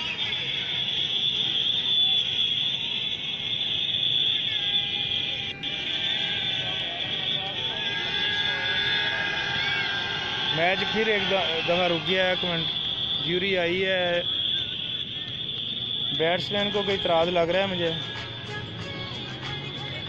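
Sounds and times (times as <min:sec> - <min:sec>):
large crowd din: 0:00.0 - 0:20.0.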